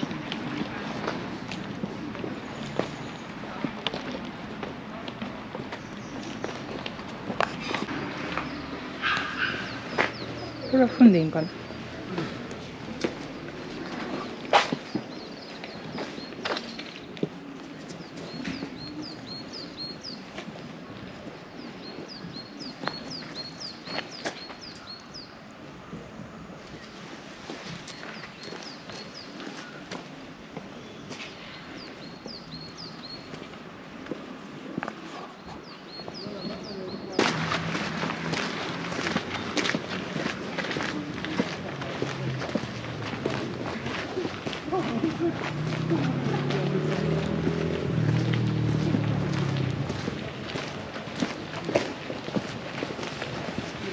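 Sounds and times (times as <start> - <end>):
footsteps on gravel: 0.0 - 19.4, 33.3 - 53.9
people walking and talking: 0.0 - 53.9.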